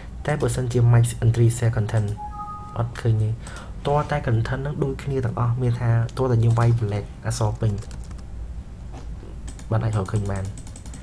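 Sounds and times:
person speaking: 0:00.4 - 0:08.0
computer keyboard typing: 0:07.5 - 0:08.2, 0:09.5 - 0:11.0.

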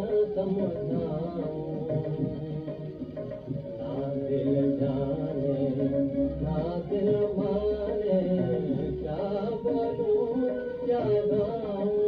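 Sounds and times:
old record film song: 0:00.0 - 0:12.0.

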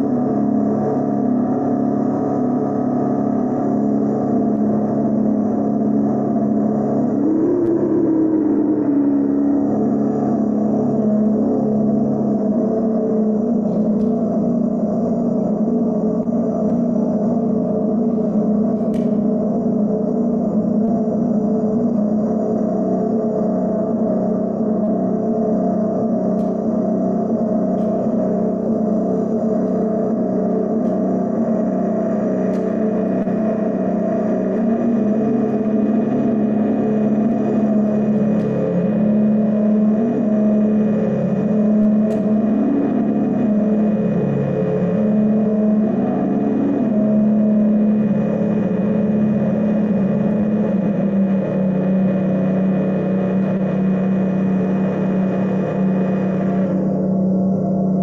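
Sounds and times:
electronic drone music: 0:00.0 - 0:58.0.

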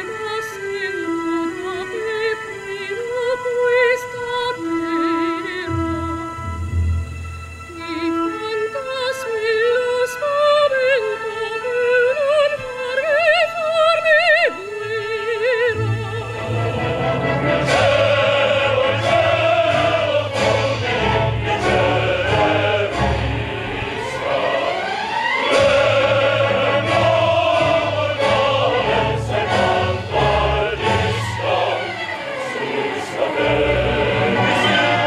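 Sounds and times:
opera chorus singing: 0:00.0 - 0:07.0, 0:07.6 - 0:35.0.

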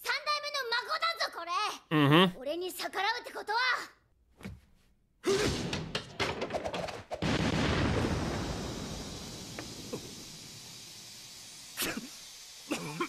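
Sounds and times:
explosion blast and rumble: 0:07.2 - 0:10.6.

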